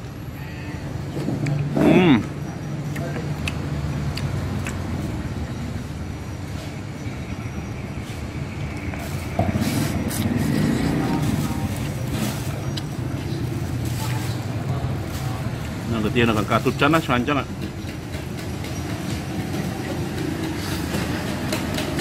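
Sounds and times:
low engine rumble: 2.5 - 22.0
faint voices: 9.4 - 17.5.

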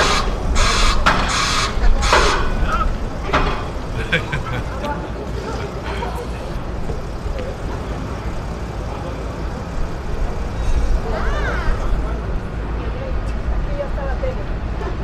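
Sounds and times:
indistinct voices: 0.0 - 15.0
road traffic rumble: 0.0 - 15.0.

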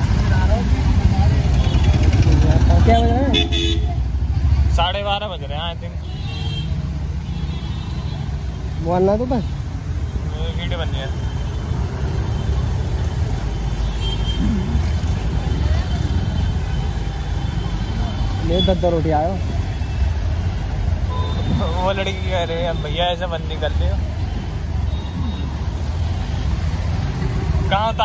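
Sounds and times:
motorbike engine: 0.0 - 4.8
slow street traffic rumble: 0.0 - 28.0.

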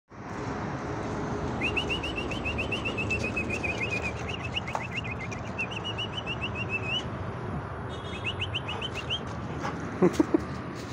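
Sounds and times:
bird chirping: 1.6 - 7.0, 8.0 - 9.3.

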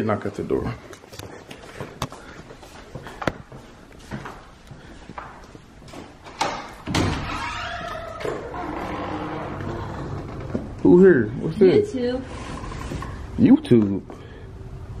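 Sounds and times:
outdoor air noise: 0.2 - 15.0
footsteps on tile floor: 0.8 - 6.9
door unlocking and opening: 6.2 - 10.4.

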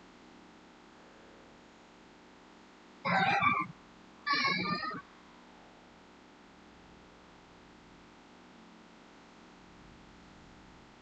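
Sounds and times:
short animal call: 3.1 - 3.7, 4.3 - 5.0.

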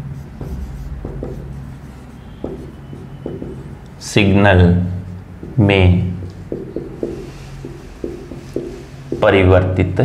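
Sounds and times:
steady low hum: 0.0 - 9.7
marker writing on whiteboard: 0.0 - 9.8.

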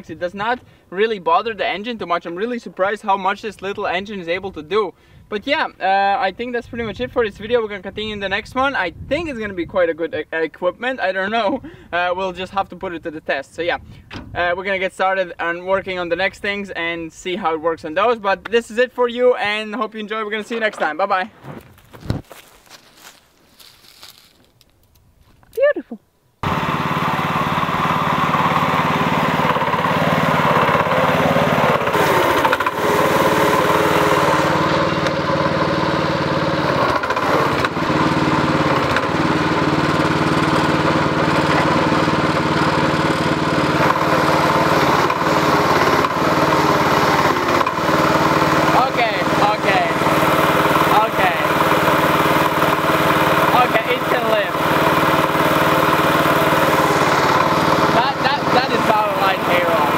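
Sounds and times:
small tractor engine running: 26.4 - 59.9.

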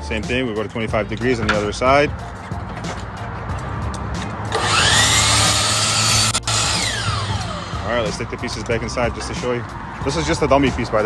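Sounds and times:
saw cutting through molding: 4.5 - 7.9
miter saw whining: 4.5 - 8.1.

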